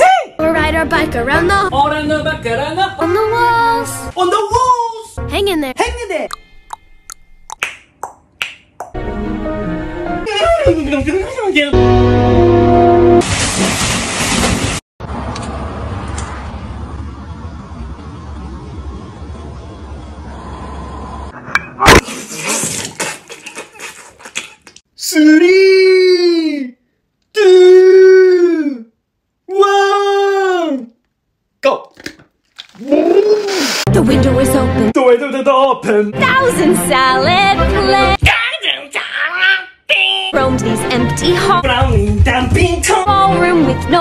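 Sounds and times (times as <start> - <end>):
music: 0.4 - 4.2, 5.2 - 5.7, 9.0 - 11.0, 11.7 - 13.2, 33.9 - 35.0, 36.1 - 38.2, 40.4 - 44.0
water splashing in a bathtub: 13.2 - 14.8, 22.0 - 24.8
roadside traffic rumble: 15.0 - 21.6
wind: 15.0 - 21.6.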